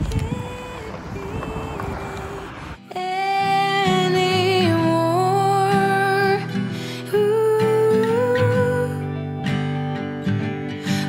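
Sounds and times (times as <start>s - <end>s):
wind on microphone: 0.0s - 2.8s
car engine and tyres on gravel: 0.0s - 2.9s.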